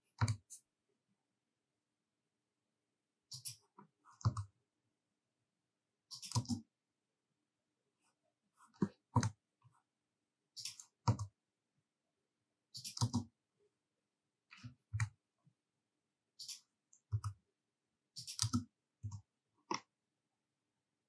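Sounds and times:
computer mouse clicks: 0.1 - 0.6, 3.3 - 4.5, 6.1 - 6.7, 10.6 - 11.4, 12.7 - 13.4, 16.4 - 17.4, 18.2 - 19.9
keyboard clicks: 6.1 - 6.7, 12.8 - 13.3, 18.2 - 19.9.

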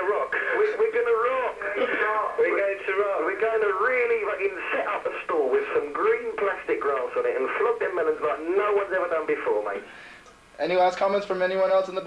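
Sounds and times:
men talking over a telephone: 0.0 - 12.0.

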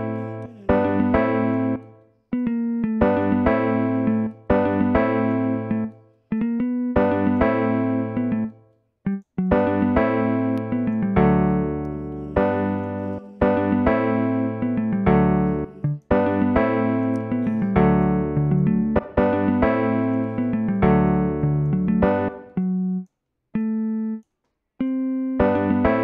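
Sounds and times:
jazz guitar chords: 0.0 - 23.0, 23.6 - 24.2, 24.8 - 26.0.

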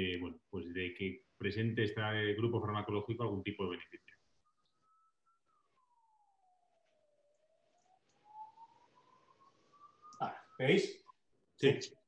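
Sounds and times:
faint noise: 0.0 - 12.0
faint wailing tone: 2.3 - 12.0.

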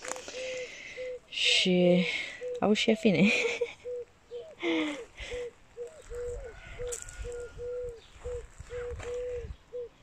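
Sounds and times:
bird calling: 0.1 - 10.0.

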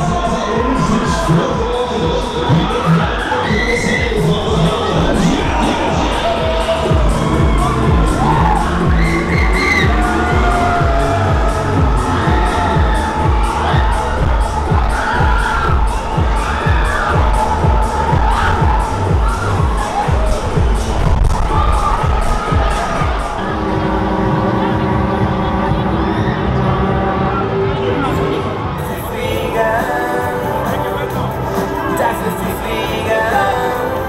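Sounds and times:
riders screaming and cheering: 0.0 - 30.8
loud dance music: 0.0 - 34.0.

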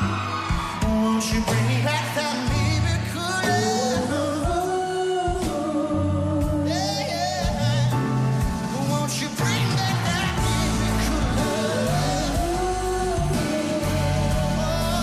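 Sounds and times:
live band playing: 0.0 - 15.0
man singing: 0.0 - 15.0
steady bass notes: 5.9 - 15.0.

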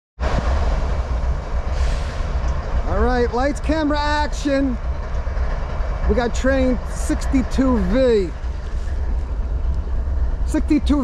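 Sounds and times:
freight train rumbling: 0.2 - 11.0.

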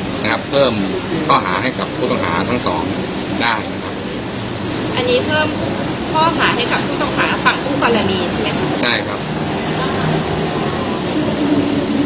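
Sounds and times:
steady low hum: 0.0 - 12.0
man speaking: 0.2 - 4.1, 8.7 - 9.3.

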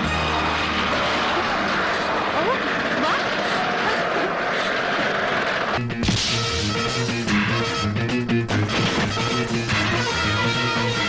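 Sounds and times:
people shouting: 0.0 - 5.8
loud rushing noise: 0.1 - 6.6.

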